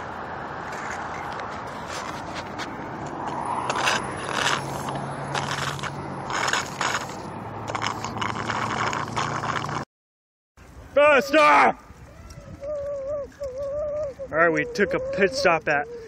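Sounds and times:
bicycle tyre and wind noise: 0:00.0 - 0:09.8, 0:10.6 - 0:16.0
scraping and rattling bursts: 0:00.6 - 0:09.9.

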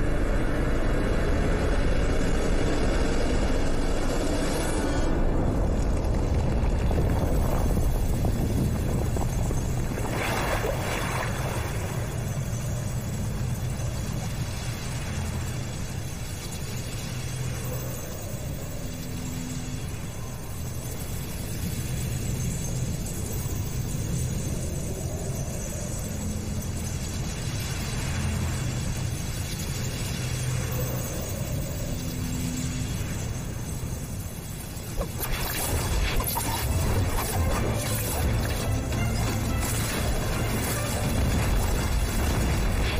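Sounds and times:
deep rumbling drone: 0:00.0 - 0:42.9.

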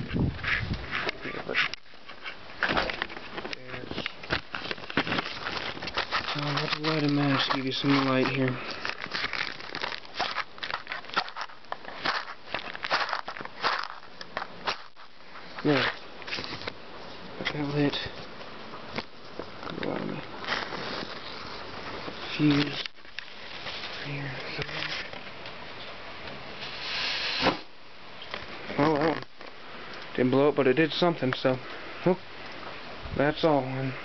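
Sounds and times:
rustling and crackling: 0:00.0 - 0:34.0
firecracker fuse hissing: 0:26.6 - 0:27.7.

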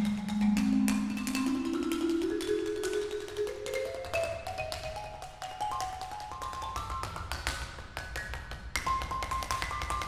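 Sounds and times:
marimba fast run: 0:00.0 - 0:07.3.

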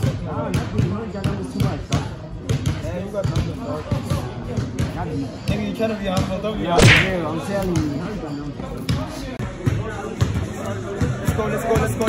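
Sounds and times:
sharp thuds: 0:06.8 - 0:07.3.

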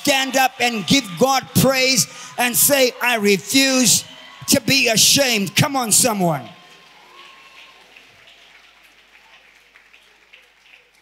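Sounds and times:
faint scattered applause: 0:00.0 - 0:11.0.

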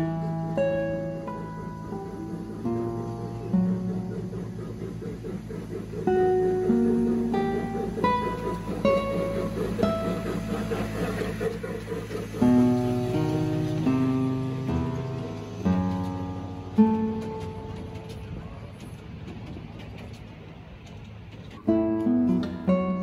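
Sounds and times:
solo acoustic guitar: 0:00.0 - 0:10.8, 0:12.4 - 0:18.4, 0:21.6 - 0:23.0.

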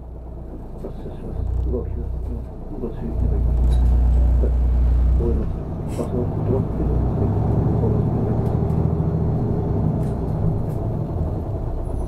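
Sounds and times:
bus engine and road rumble: 0:00.0 - 0:12.0
heavy truck passing: 0:00.0 - 0:12.0.

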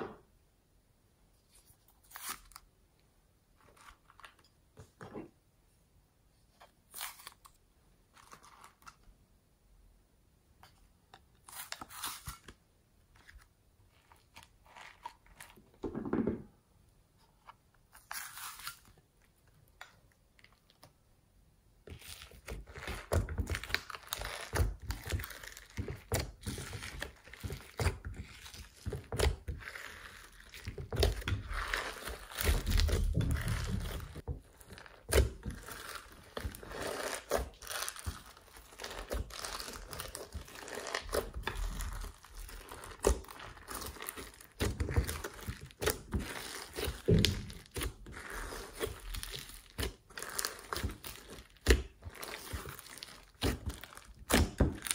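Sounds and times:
modelling clay rustling: 0:01.2 - 0:09.6, 0:10.3 - 0:54.9
slime squishing: 0:21.9 - 0:54.9.

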